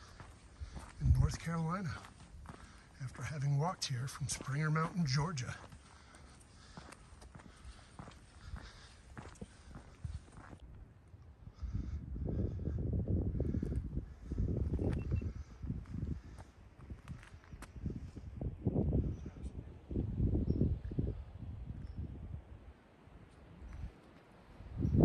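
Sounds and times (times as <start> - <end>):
wind buffeting microphone: 0.0 - 5.7, 6.6 - 25.0
footsteps on flagstone path: 0.0 - 10.9, 14.6 - 18.2.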